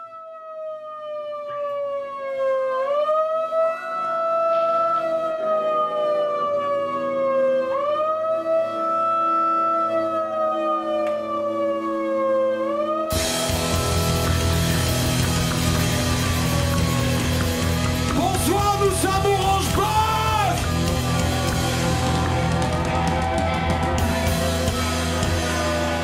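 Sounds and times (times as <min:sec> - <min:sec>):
siren-like wailing tone: 0:00.0 - 0:26.0.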